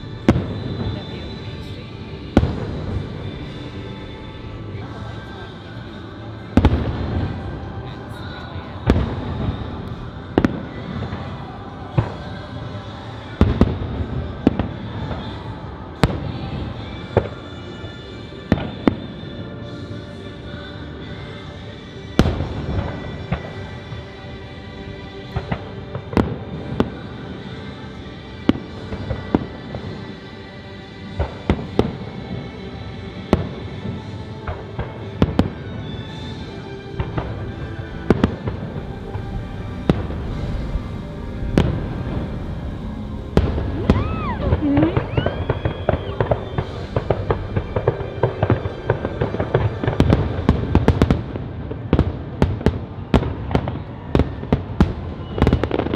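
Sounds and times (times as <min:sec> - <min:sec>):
fireworks bursting: 0:00.0 - 0:19.4, 0:22.1 - 0:24.4, 0:31.0 - 0:55.9
music playing: 0:00.0 - 0:55.9.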